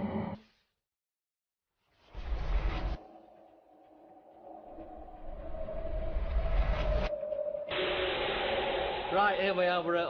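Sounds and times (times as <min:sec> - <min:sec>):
whoosh with deep rumble: 0:04.4 - 0:10.0
held drone: 0:04.5 - 0:10.0.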